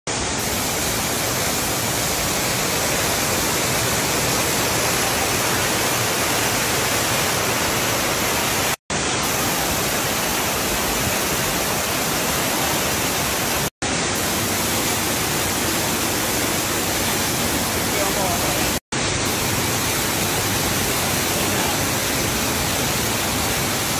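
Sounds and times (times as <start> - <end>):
waterfall rushing over rocks: 0.1 - 23.9.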